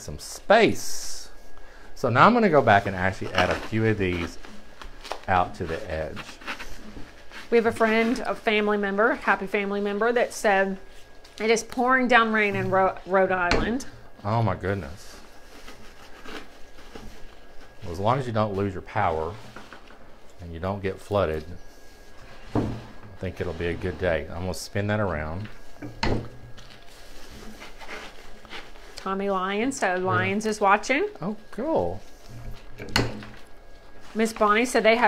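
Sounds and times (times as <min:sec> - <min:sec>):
rustling of silk flower stems: 0:00.3 - 0:13.4, 0:14.1 - 0:25.8, 0:26.5 - 0:35.0.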